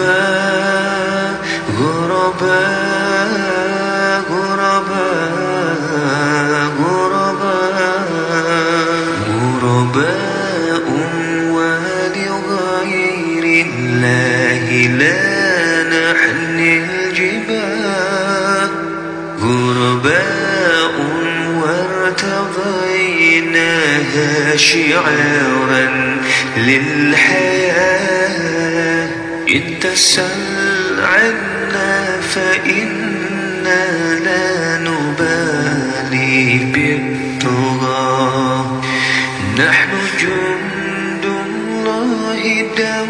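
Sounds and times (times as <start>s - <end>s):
man chanting melismatic notes: 0.0s - 43.0s
steady held drone: 0.0s - 43.0s.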